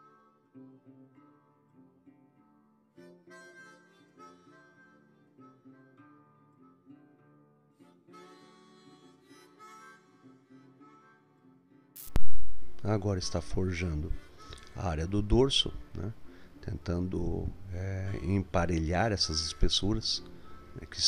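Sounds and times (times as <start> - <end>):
faint instrumental music: 0.0 - 21.0.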